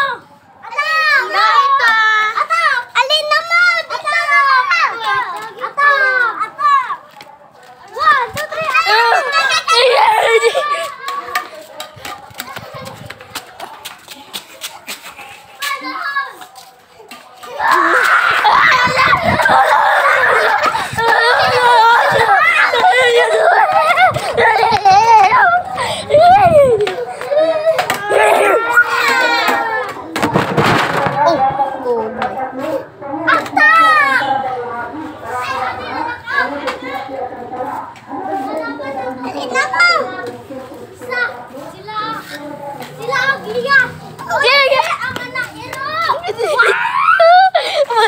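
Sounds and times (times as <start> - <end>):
children shrieking and yelling: 0.0 - 7.0, 7.9 - 13.0, 15.1 - 30.2, 33.3 - 34.5, 43.0 - 48.0
high-pitched child's cry: 17.6 - 29.6, 46.4 - 47.6.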